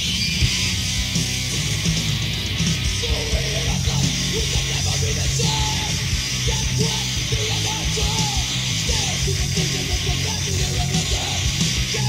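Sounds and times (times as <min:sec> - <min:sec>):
hardcore punk music: 0:00.0 - 0:12.0
person shouting vocals: 0:03.0 - 0:12.0.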